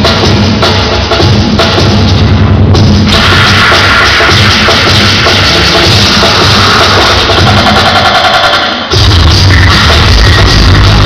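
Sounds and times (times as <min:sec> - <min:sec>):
beatbox music through speakers: 0:00.0 - 0:11.0
buzzing machine-like vocal sound: 0:09.0 - 0:11.0.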